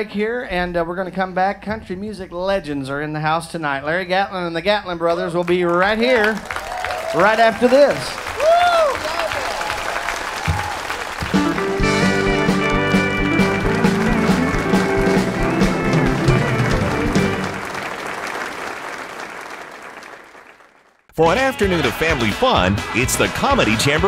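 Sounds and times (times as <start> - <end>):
audience applauding: 5.4 - 24.0
music with guitar: 11.3 - 17.5.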